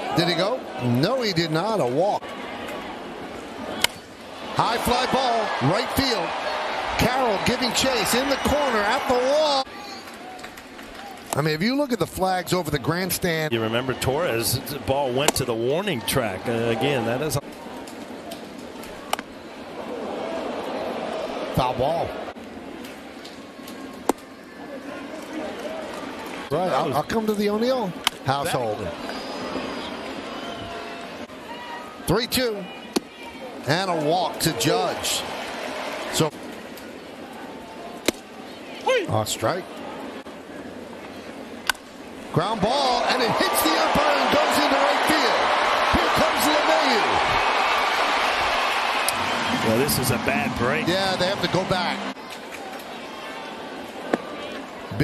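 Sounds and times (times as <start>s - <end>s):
stadium crowd cheering: 0.0s - 17.4s, 18.9s - 22.4s, 28.5s - 36.3s, 42.4s - 55.0s
crowd murmur: 49.0s - 55.0s.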